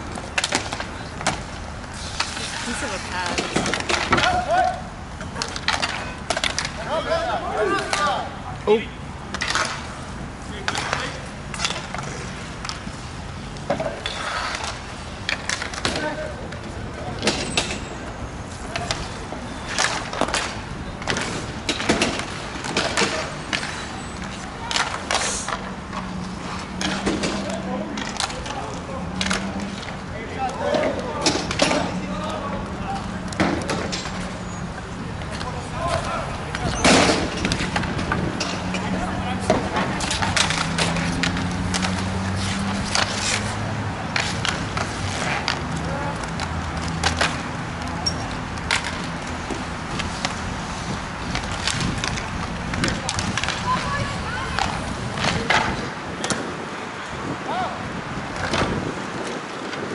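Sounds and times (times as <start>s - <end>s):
sticks and puck clacking: 0.0s - 57.3s, 58.2s - 59.9s
skate wheels rolling: 0.0s - 59.9s
voices calling out: 0.1s - 12.6s, 13.5s - 50.2s, 51.3s - 58.8s.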